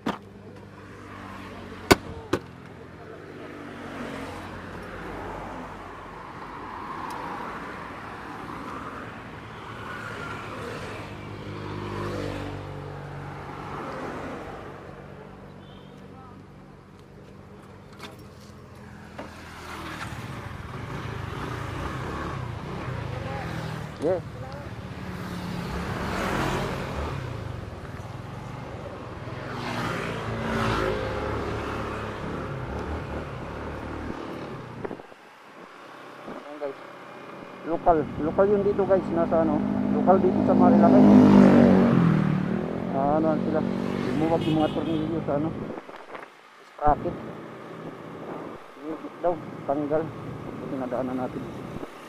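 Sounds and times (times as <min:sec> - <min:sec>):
road noise: 0:00.0 - 0:52.0
wind: 0:00.0 - 0:52.0
motorcycle passing by: 0:08.2 - 0:14.8, 0:18.9 - 0:34.8, 0:35.9 - 0:45.8
scooter engine: 0:19.2 - 0:34.8.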